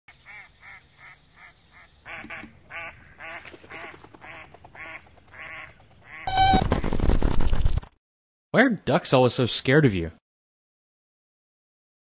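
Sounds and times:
ducks quacking: 0:00.1 - 0:06.3.

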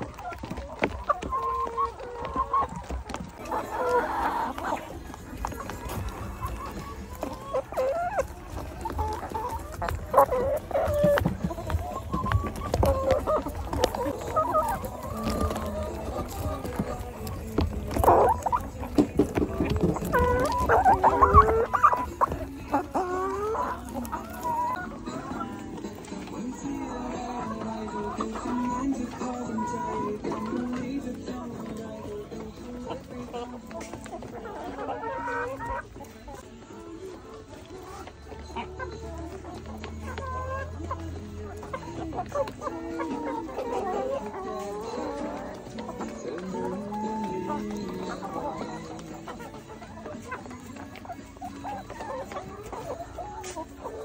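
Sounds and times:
beaks pecking at feed: 0:00.0 - 0:37.9
hens clucking: 0:00.0 - 0:54.0.

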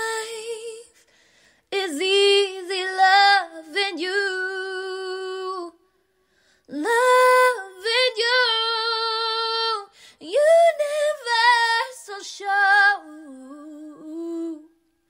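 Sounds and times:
woman singing unaccompanied: 0:01.7 - 0:05.8, 0:06.7 - 0:14.7.

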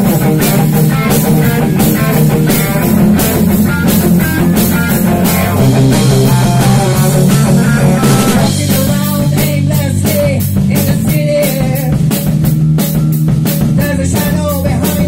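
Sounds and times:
electric bass: 0:00.0 - 0:15.0
electric guitars: 0:00.0 - 0:15.0
steady drum beat: 0:00.0 - 0:15.0.

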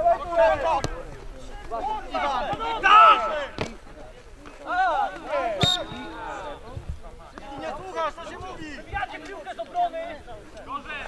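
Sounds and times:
people talking and calling: 0:00.0 - 0:11.0
loud drawn-out call: 0:05.6 - 0:06.6.

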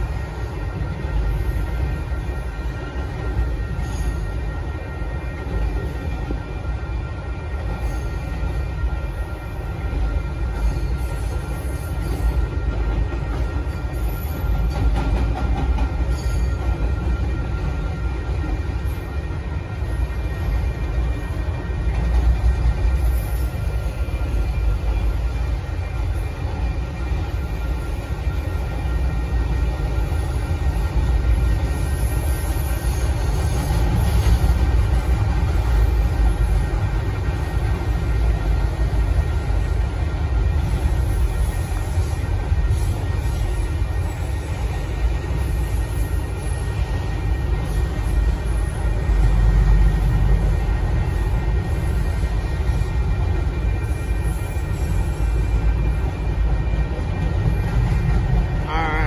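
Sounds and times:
freight train cars rumbling past: 0:00.0 - 0:59.0.

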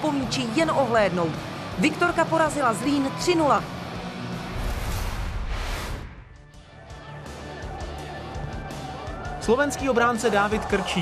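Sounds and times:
whoosh sound effect: 0:04.5 - 0:06.5.

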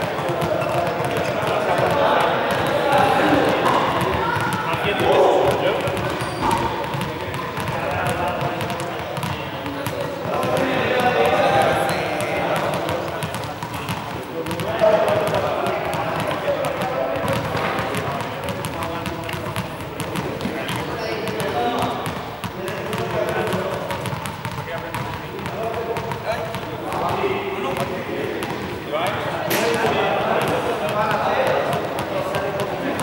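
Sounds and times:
indistinct voices echoing: 0:00.0 - 0:33.0.

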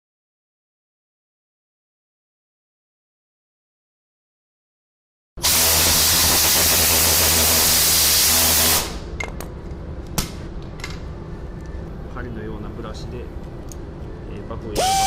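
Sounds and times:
air polisher spinning with hiss: 0:05.4 - 0:09.0, 0:14.8 - 0:15.0.

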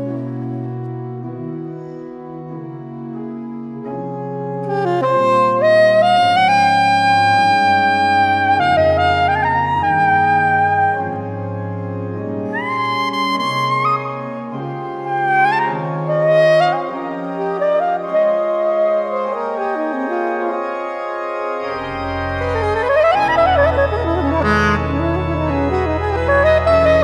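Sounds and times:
organ chords: 0:00.0 - 0:27.0
saxophone playing: 0:03.9 - 0:27.0.

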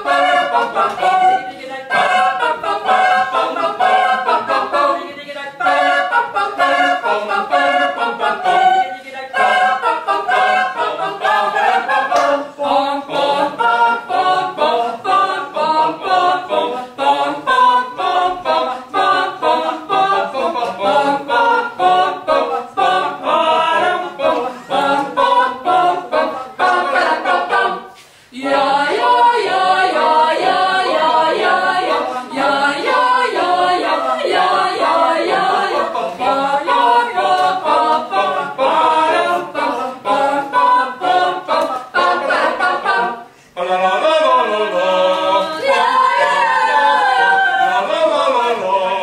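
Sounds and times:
choir singing a cappella: 0:00.0 - 0:49.0.

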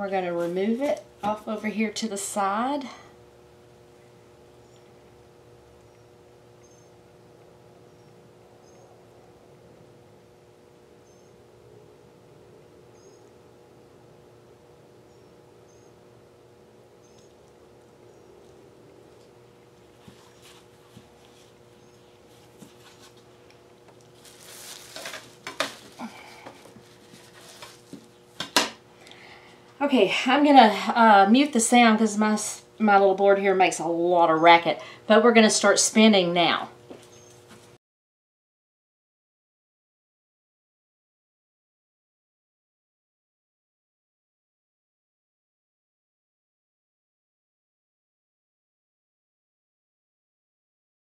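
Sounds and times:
faint room hum: 0:00.0 - 0:37.8.

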